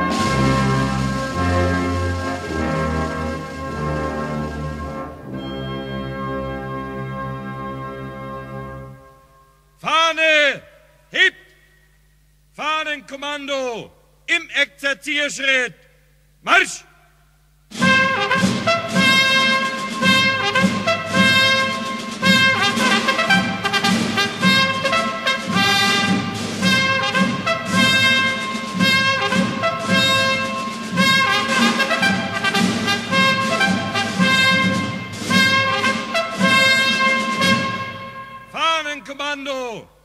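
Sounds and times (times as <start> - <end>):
military brass band playing a march: 0.0 - 9.0, 17.7 - 38.6.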